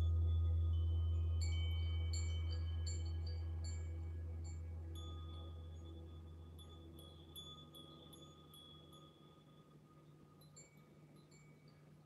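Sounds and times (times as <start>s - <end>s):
low hum: 0.0s - 7.0s.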